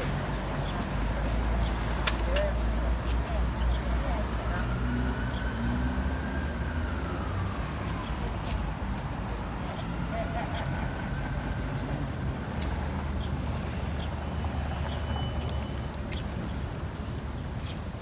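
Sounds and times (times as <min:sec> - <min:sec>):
passing cars rumbling: 0:00.0 - 0:18.0.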